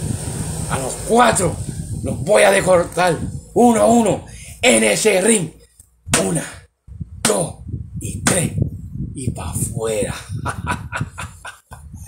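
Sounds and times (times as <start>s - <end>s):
man laughing in a cackle: 10.1s - 12.0s.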